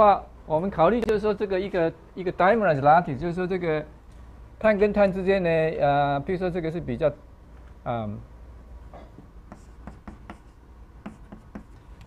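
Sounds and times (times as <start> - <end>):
chalk tapping and scratching: 9.4 - 11.9.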